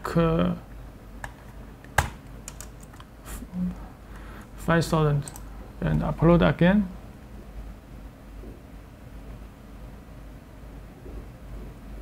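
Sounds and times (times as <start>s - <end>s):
keyboard keystrokes: 1.2s - 3.1s.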